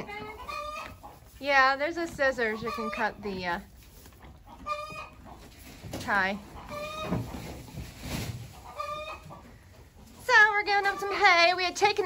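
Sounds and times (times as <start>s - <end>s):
chicken calling: 0.0s - 1.2s, 2.4s - 3.5s, 4.4s - 5.4s, 6.5s - 7.3s, 8.5s - 9.7s.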